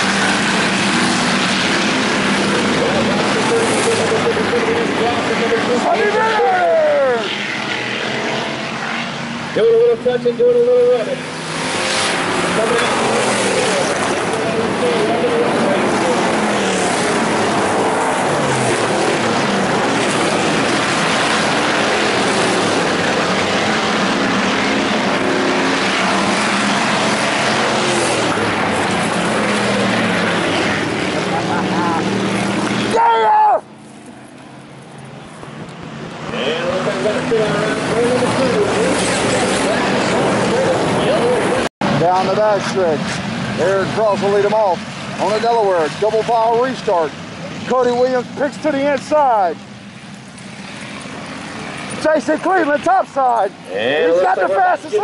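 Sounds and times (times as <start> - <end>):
race car engines passing: 0.0 - 55.0
announcer on public address: 2.8 - 7.4, 9.5 - 11.3, 12.5 - 16.8, 52.0 - 55.0.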